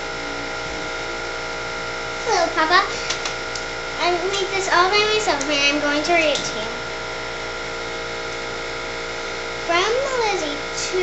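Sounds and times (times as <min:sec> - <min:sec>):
mechanical hum with high whine: 0:00.0 - 0:11.0.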